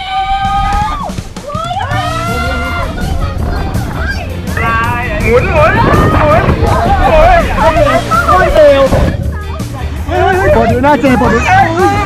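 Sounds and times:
background music: 0.0s - 12.0s
people shouting and laughing: 0.0s - 12.0s.

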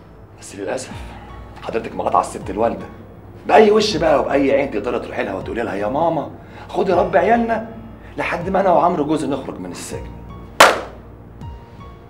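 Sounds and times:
loud percussive hit: 10.6s - 11.0s.

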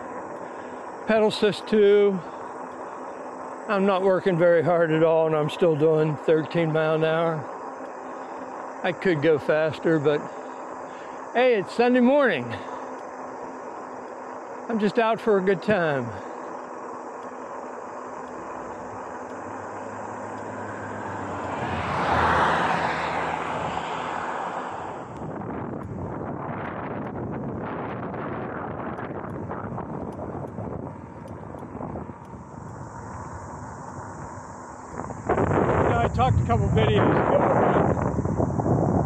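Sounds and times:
tyres rolling on asphalt: 11.4s - 25.2s
wind on microphone: 24.7s - 39.0s.

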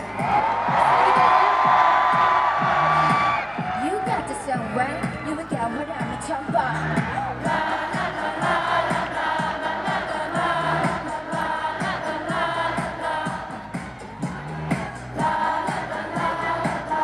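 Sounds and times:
pop backing track: 0.0s - 17.0s
women singing pop song live: 3.6s - 14.1s, 15.2s - 17.0s.

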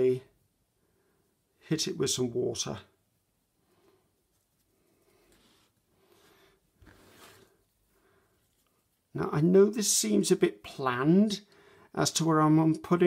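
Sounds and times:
soft paintbrush handling sounds: 3.3s - 9.4s.

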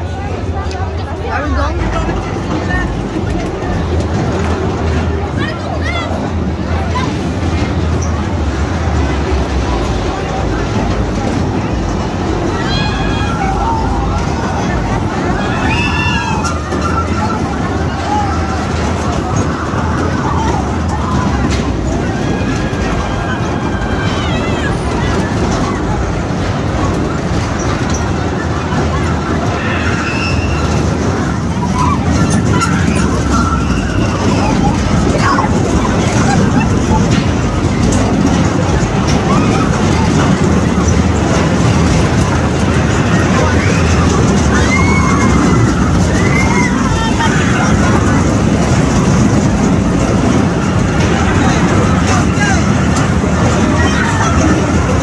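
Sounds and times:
carnival ride machinery rumbling: 0.0s - 55.0s
faint voices: 0.0s - 55.0s.

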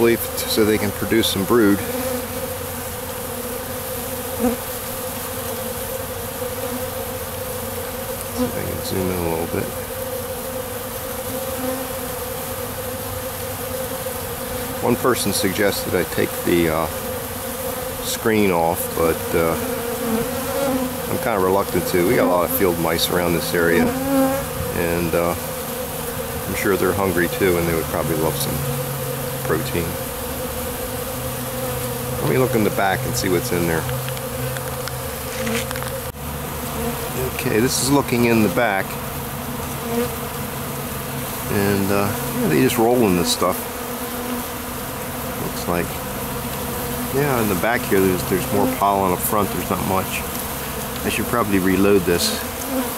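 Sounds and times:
honeybees buzzing: 0.0s - 52.9s.

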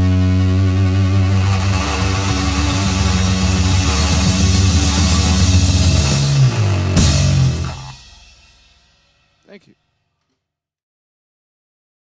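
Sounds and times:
rock band final chord: 1.6s - 9.1s.

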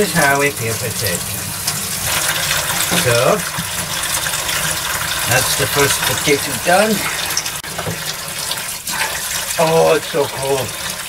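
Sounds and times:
tap running into a steel sink: 0.6s - 8.6s.

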